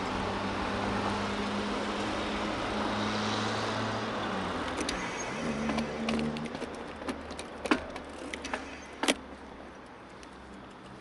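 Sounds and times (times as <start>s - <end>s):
bicycle tyre noise on asphalt: 0.0s - 11.0s.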